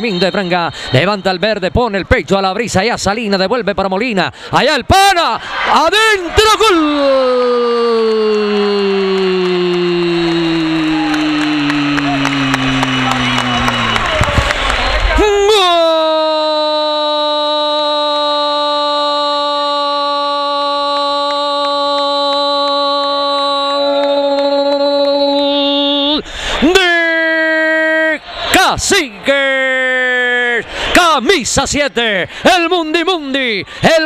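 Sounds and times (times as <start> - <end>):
short breath: 0.7 - 0.9, 4.3 - 4.6, 26.2 - 26.6
sports commentator's drawn-out cry: 4.6 - 34.0.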